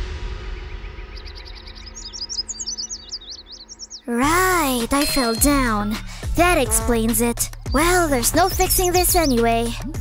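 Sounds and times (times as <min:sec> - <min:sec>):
birds chirping: 0:00.6 - 0:10.0
background music with low notes: 0:04.2 - 0:10.0.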